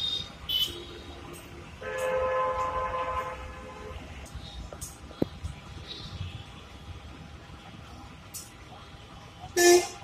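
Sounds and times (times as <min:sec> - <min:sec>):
horn sounding: 0:01.8 - 0:03.9.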